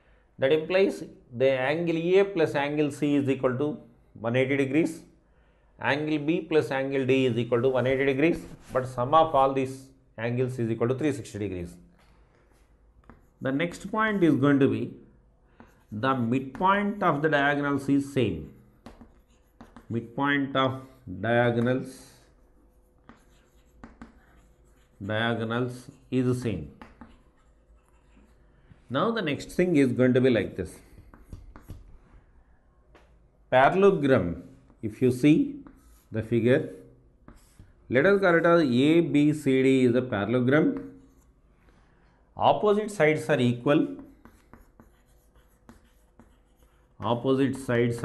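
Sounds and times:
chalk scratching on blackboard: 15.6s - 20.0s, 20.8s - 28.6s, 30.8s - 31.9s, 35.6s - 36.2s, 37.3s - 38.3s, 43.8s - 48.0s.

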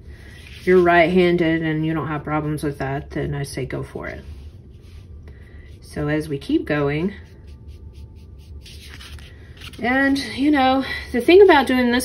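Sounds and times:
paintbrush strokes on canvas: 0.2s - 1.0s, 4.1s - 6.1s, 7.2s - 9.3s.

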